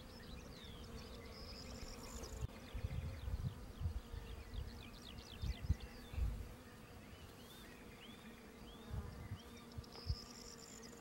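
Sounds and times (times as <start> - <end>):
wasp buzzing: 0.0 - 11.0.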